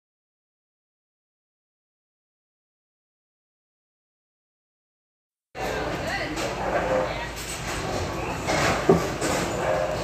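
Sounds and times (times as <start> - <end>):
steady hum of hall: 5.6 - 10.0.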